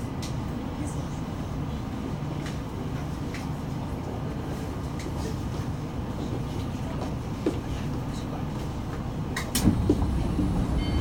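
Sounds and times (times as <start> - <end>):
train car hum and rumble: 0.0 - 11.0.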